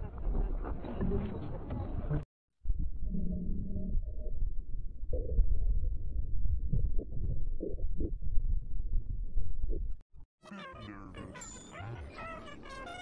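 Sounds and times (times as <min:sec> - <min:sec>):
muffled pulsing bass audio: 0:00.0 - 0:10.0.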